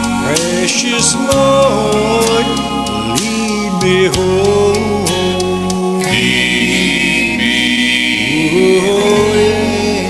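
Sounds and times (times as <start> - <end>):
gospel backing track with choir: 0.0 - 10.0.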